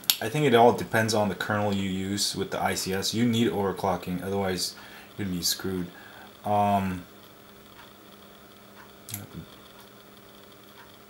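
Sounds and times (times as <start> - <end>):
faint steady hum: 0.0 - 11.0
light ticks: 8.8 - 10.0, 10.7 - 11.0.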